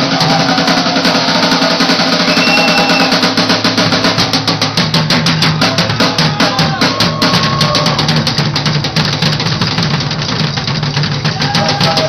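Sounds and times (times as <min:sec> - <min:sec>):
drum kit with cymbals: 0:00.0 - 0:12.0
electric bass: 0:00.0 - 0:12.0.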